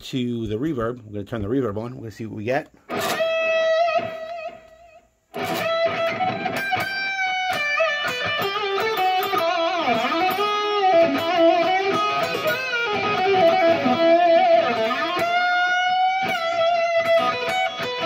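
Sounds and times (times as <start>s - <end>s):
electric guitar lead lines: 2.9s - 18.0s.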